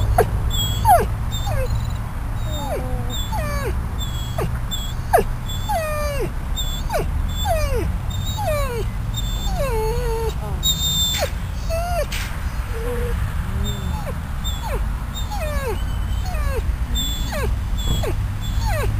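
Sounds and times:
dog whining: 0.0 - 18.9.

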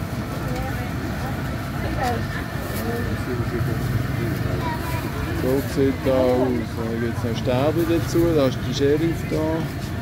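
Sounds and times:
scattered voices: 0.2 - 10.0.

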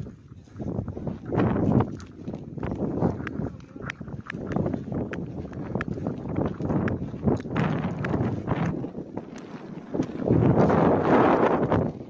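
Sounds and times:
footsteps on stony ground: 0.0 - 12.0
wind buffeting microphone: 0.0 - 12.0.

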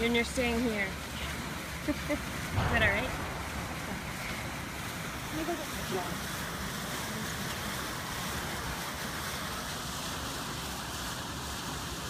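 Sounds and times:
water splashing in fountain: 0.0 - 12.0.

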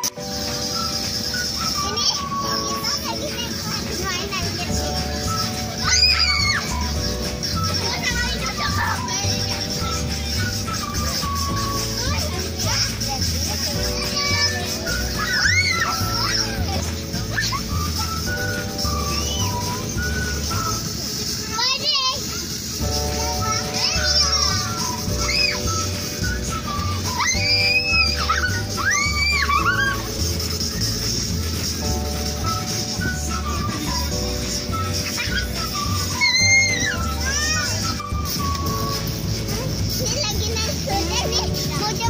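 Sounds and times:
high-pitched wavering shrieks: 0.0 - 39.8
background music: 0.0 - 42.0
children playing and chattering: 0.0 - 42.0
child's high-pitched squeal: 0.7 - 31.1, 32.3 - 42.0.

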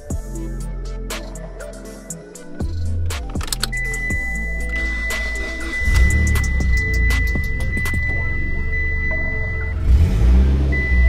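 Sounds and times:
music with steady beat: 0.0 - 10.2
sustained high tone: 3.7 - 9.8.

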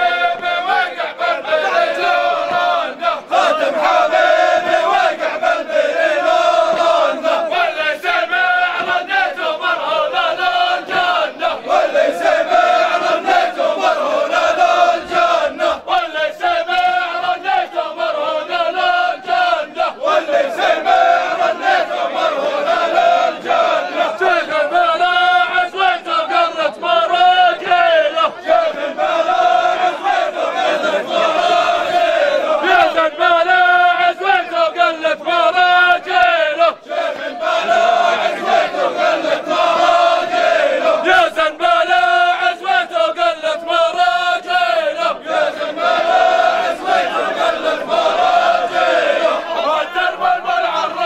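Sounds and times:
men chanting in unison: 0.0 - 51.0.

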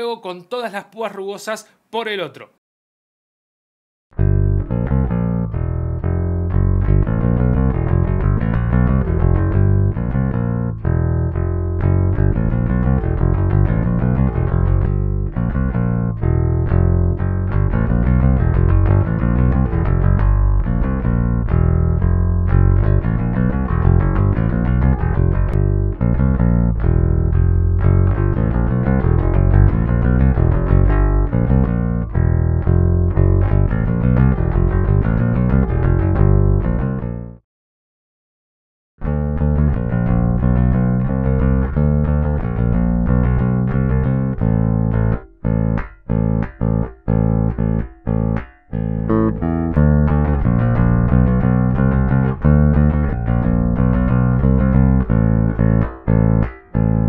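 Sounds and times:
picked electric bass line: 4.1 - 37.4, 39.0 - 57.0.

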